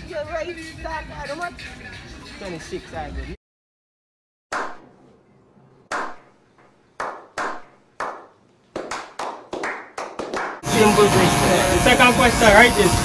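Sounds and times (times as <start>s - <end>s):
hand clapping: 5.9s - 6.2s, 7.0s - 10.6s
electric hair clippers buzzing: 10.6s - 13.0s.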